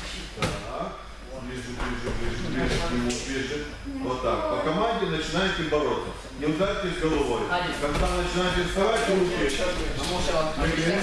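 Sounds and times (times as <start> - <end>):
indistinct voices in a hall: 0.0 - 11.0.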